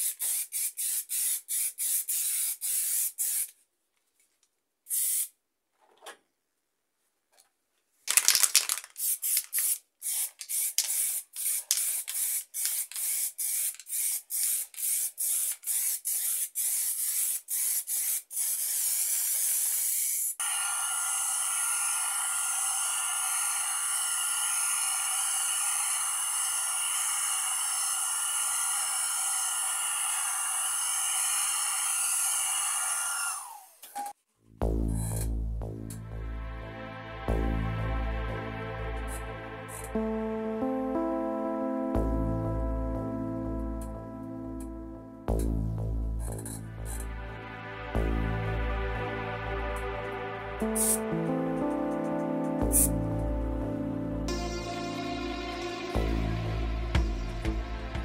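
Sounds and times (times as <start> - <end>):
aerosol spray can hissing: 0.0 - 3.5, 4.9 - 5.3, 8.8 - 20.5, 50.6 - 51.0.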